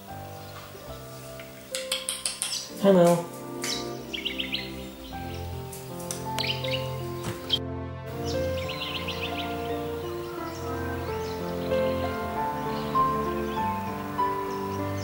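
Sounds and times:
slow music with sustained notes: 0.0s - 15.0s
small birds chirping: 0.0s - 15.0s.

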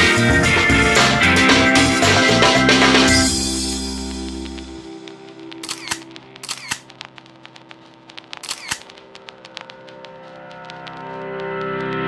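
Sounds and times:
camera shutter clicks: 5.6s - 6.9s, 8.4s - 8.9s.

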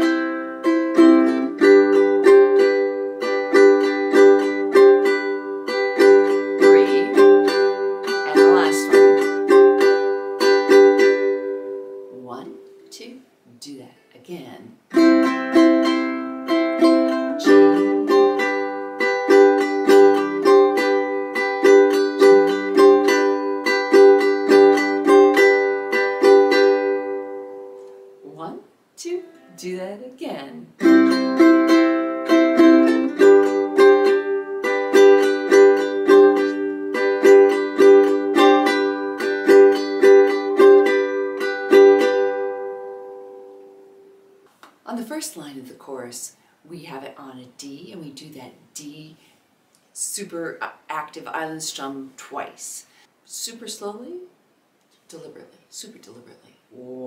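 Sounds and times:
ukulele strumming chords: 0.0s - 12.9s, 14.9s - 28.5s, 29.1s - 44.8s.

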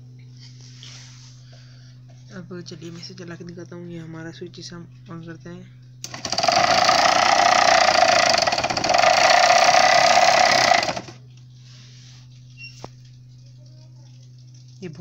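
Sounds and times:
small motor buzzing: 6.0s - 11.2s.

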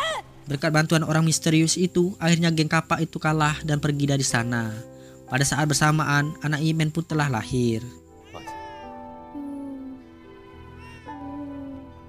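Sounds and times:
newborn baby crying: 0.0s - 0.4s, 8.2s - 12.0s
soft background music: 0.0s - 12.0s.

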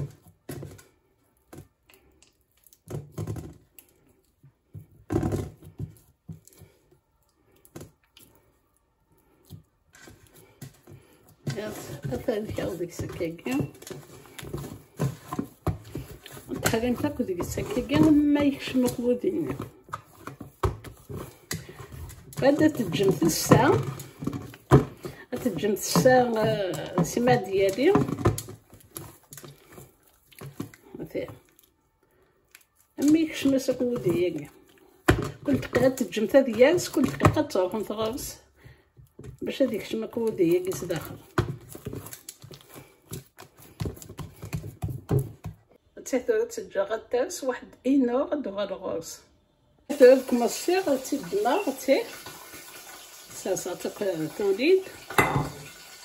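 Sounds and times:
hands kneading sticky dough: 0.0s - 45.8s.

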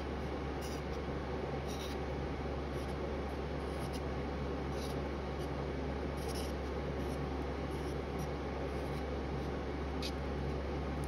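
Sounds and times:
steady low hum: 0.0s - 11.0s
palette knife scraping: 0.2s - 10.7s.

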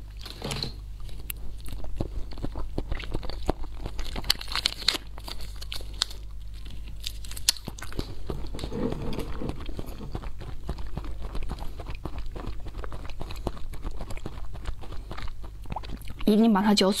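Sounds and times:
jelly squeezed and chewed: 0.0s - 16.5s
packaging crinkling and mouth clicks: 0.1s - 16.3s.

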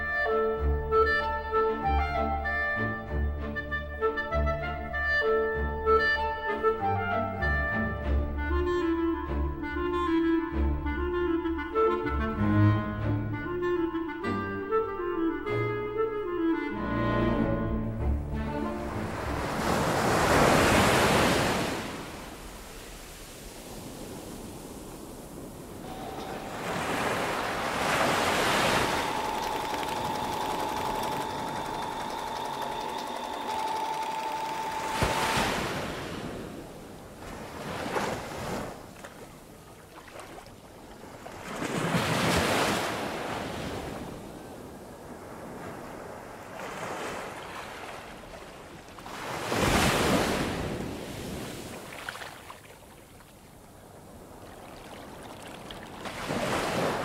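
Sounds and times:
waves breaking and washing back: 16.2s - 57.0s
thin steady high tone: 25.8s - 35.4s.

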